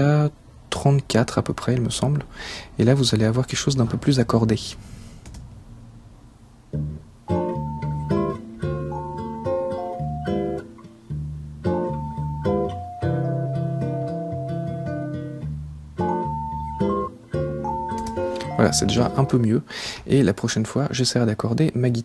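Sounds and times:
guitar playing: 6.7 - 19.6
electric piano playing: 6.8 - 10.8, 11.6 - 19.5.

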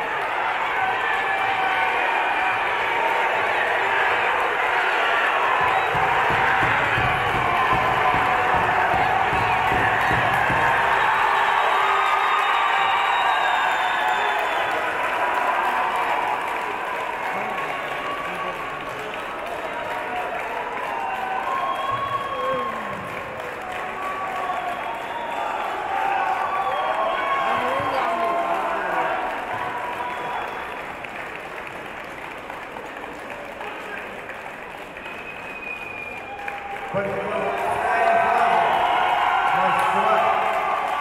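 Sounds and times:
crowd applauding: 0.0 - 41.0
crowd voices: 0.0 - 41.0.

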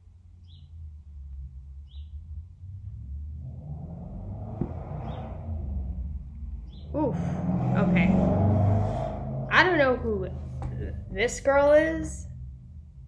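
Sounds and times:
low steady rumble: 0.0 - 13.0
rushing noise: 3.5 - 9.6.

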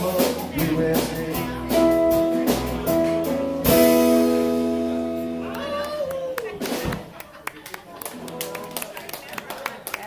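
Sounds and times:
hand claps: 5.5 - 10.0.

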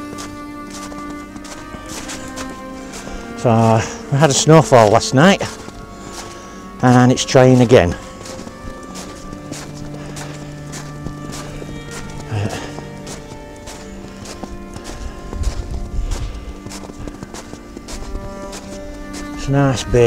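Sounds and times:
background music with held notes: 0.0 - 20.0
footsteps crunching through snow: 0.0 - 20.0.

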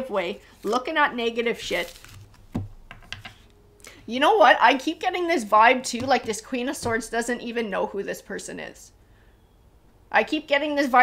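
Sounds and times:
cards clicking on a tabletop: 2.3 - 3.4.

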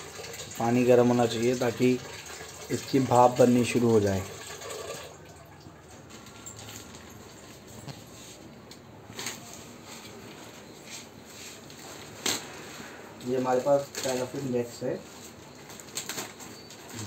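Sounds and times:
plastic bag rustling: 6.0 - 17.0.

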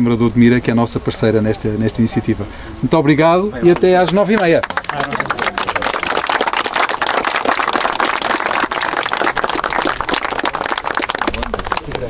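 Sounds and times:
people applauding: 3.1 - 12.0.

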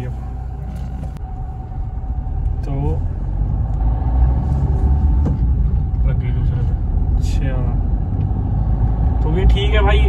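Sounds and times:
car engine rumble from inside: 0.0 - 10.0.

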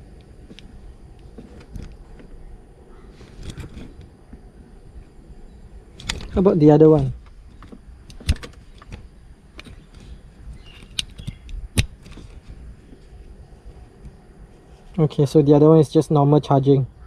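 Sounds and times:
cable rustling: 0.3 - 2.5, 3.1 - 5.2, 5.8 - 15.0.

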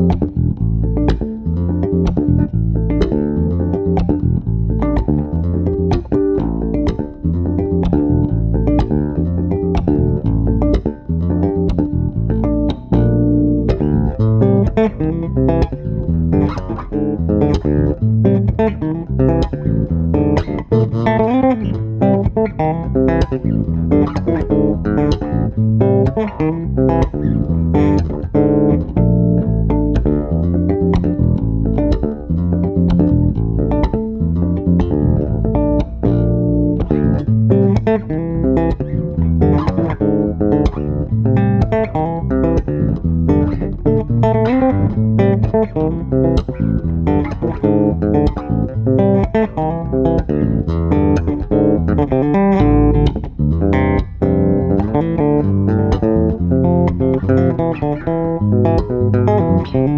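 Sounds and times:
electric bass fingerstyle melody: 0.0 - 59.9.

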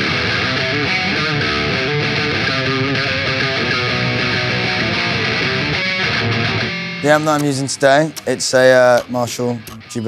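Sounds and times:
distorted electric guitar riff: 0.0 - 10.0.

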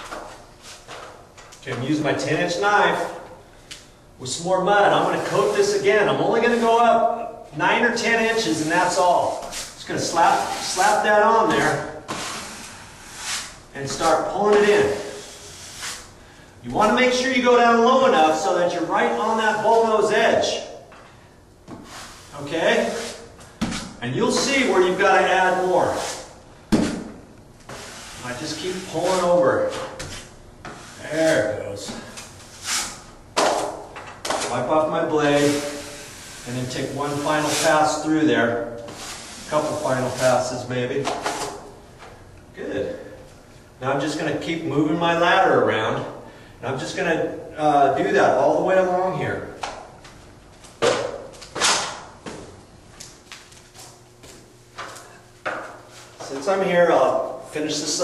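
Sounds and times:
drywall knife scraping compound: 4.8 - 6.9, 8.3 - 16.1, 21.8 - 23.3, 27.7 - 33.8, 38.9 - 40.4.

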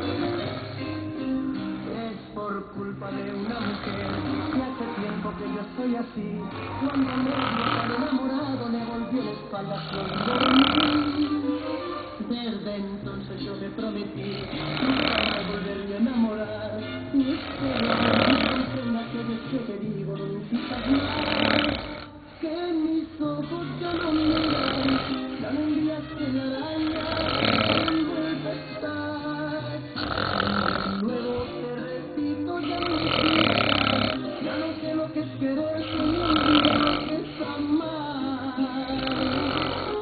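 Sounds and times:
man snoring: 0.0 - 12.2, 13.1 - 40.0
song with singing voice: 0.0 - 40.0.

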